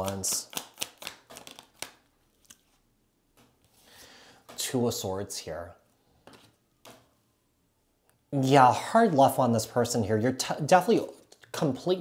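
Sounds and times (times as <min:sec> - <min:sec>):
cards snapping and rustling: 0:00.0 - 0:02.8.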